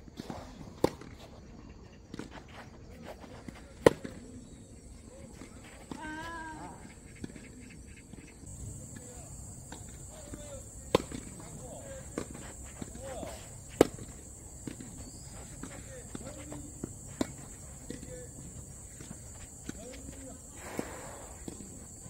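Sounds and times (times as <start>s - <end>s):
faint ball impacts: 5.3s - 22.0s
racket hitting tennis ball: 8.5s - 22.0s.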